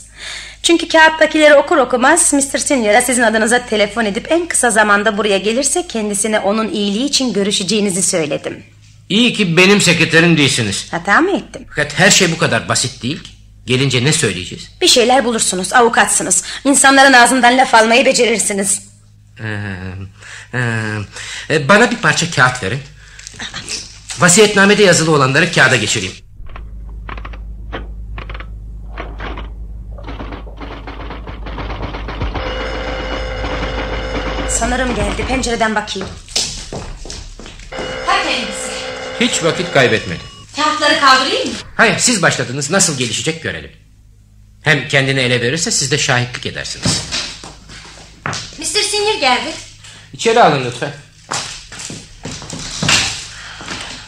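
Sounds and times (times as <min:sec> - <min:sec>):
steady engine hum: 0:24.9 - 0:50.2
footsteps on a hard floor: 0:34.8 - 0:38.3, 0:46.8 - 0:48.6, 0:51.2 - 0:54.0.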